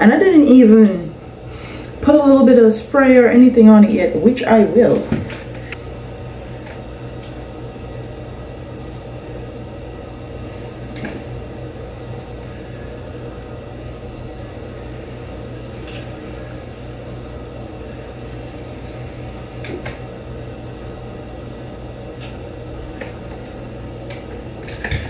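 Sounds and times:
low electrical hum: 0.0s - 25.0s.

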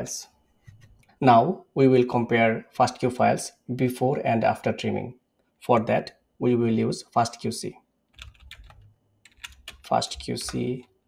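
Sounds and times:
keyboard typing clicks: 8.2s - 10.7s.

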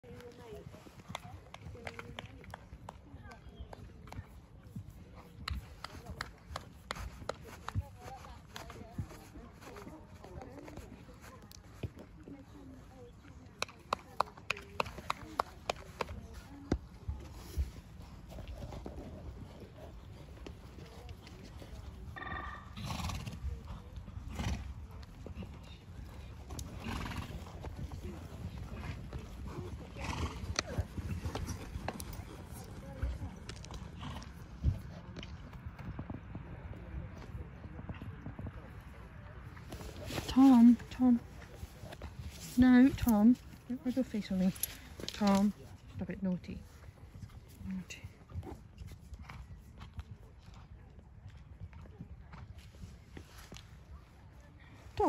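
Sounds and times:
hoofbeats on sand: 0.0s - 46.0s.

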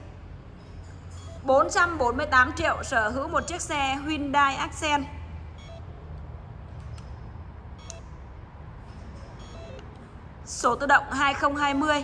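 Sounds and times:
faint short electronic beeps: 5.6s - 5.9s, 9.2s - 9.9s.

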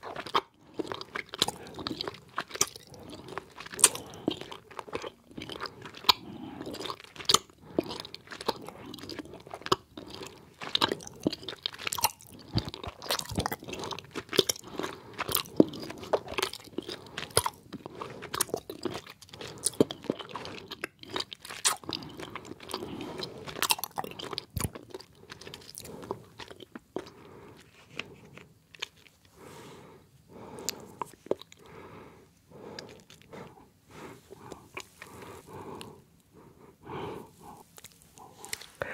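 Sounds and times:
person chewing gummy candies: 0.0s - 38.9s.

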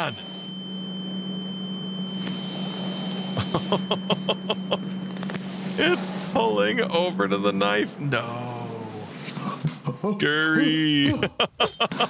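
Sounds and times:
short beeps: 0.0s - 8.7s
high-pitched ringing tone: 0.0s - 9.6s, 11.6s - 12.0s
low hum: 0.0s - 10.8s.

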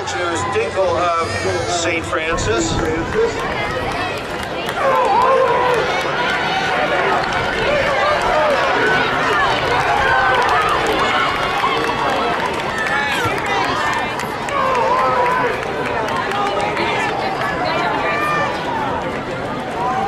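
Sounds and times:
crowd din: 0.0s - 20.0s
spectators yelling and cheering: 0.0s - 20.0s.

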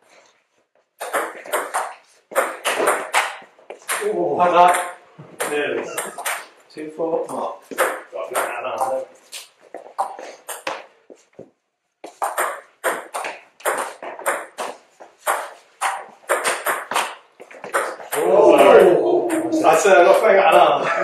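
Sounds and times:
person crying out: 18.2s - 19.5s.

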